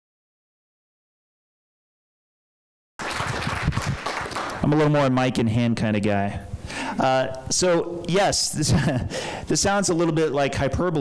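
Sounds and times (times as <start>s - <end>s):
noisy rustling room sound: 3.0s - 11.0s.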